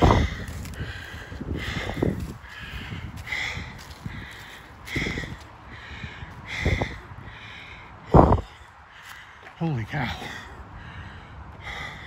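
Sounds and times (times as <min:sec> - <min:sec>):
man breathing hard: 0:00.0 - 0:12.0.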